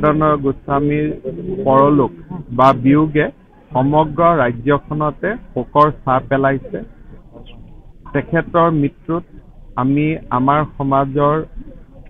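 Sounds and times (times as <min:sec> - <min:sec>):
man speaking into microphones: 0:00.0 - 0:11.6.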